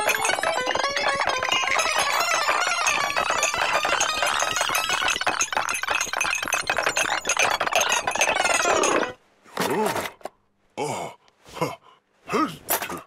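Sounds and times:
china cups and glasses clinking: 0.0 - 9.2
person saying oh: 10.8 - 12.6.

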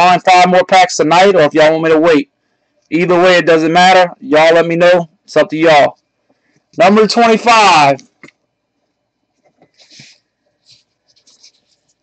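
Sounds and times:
trading cards rustling and ticking: 9.3 - 12.0.

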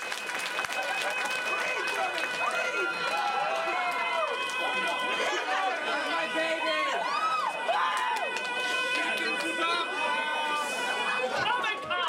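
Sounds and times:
audience cheering and screaming: 0.0 - 11.4
man yelling through pa system: 1.5 - 7.1, 8.8 - 12.0.

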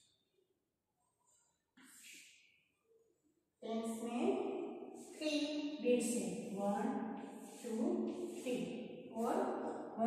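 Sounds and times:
woman speaking: 3.6 - 4.4, 5.8 - 10.0.

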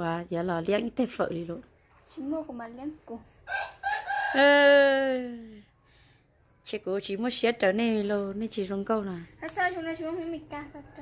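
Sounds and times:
rooster crowing: 3.5 - 4.8.

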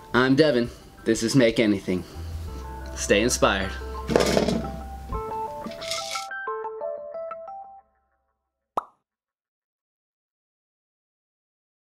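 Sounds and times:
pop with upward pitch bend: 8.8 - 9.0.

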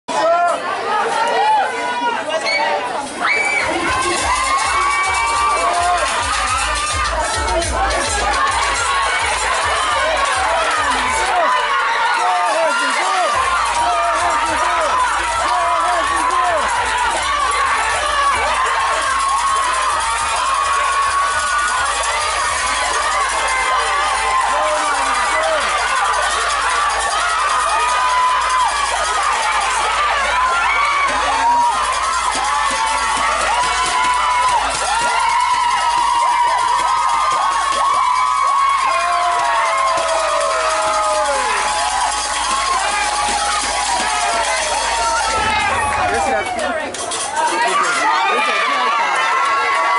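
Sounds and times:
crowd cheering and shouting: 0.0 - 49.9
long falling shouts: 0.2 - 49.9.

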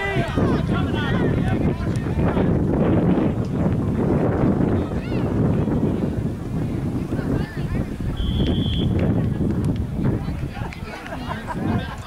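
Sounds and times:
wind rumbling on microphone: 0.0 - 12.0
referee's whistle blast: 8.2 - 9.0.

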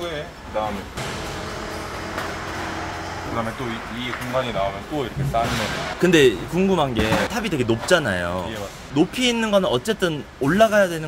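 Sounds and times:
electric motor humming: 1.0 - 4.3.

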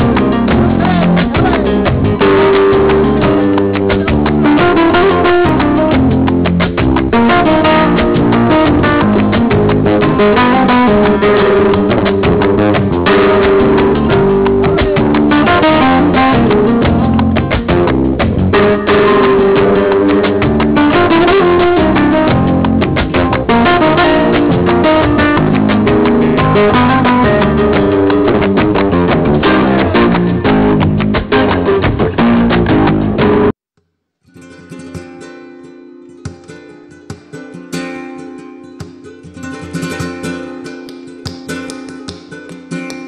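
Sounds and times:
flamenco guitar playing: 0.0 - 33.5, 34.2 - 43.0.

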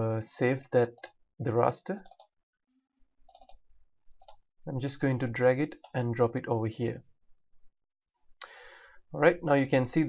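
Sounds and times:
faint computer mouse clicks: 3.3 - 3.6.

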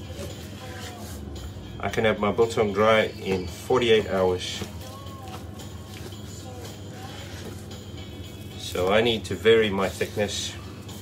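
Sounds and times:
faint music: 0.0 - 11.0
steady low hum: 0.0 - 11.0.

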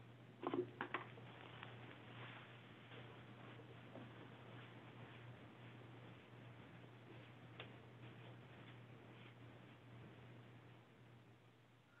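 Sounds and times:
steady low hum: 0.0 - 12.0
faint clicks and knocks: 7.1 - 10.8.

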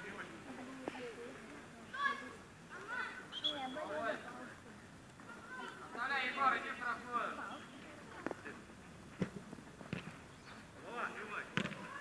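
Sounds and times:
children calling out: 1.9 - 3.8, 5.2 - 6.0, 11.8 - 12.0
football being kicked: 9.2 - 10.2, 11.5 - 12.0.

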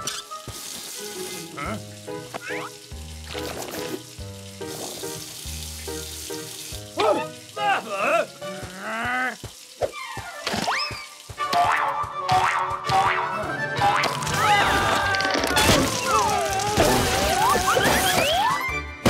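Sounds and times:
cartoon background music: 0.0 - 19.0.

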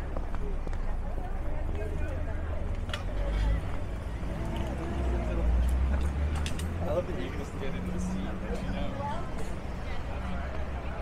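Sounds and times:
people talking: 0.0 - 6.2, 6.8 - 11.0.

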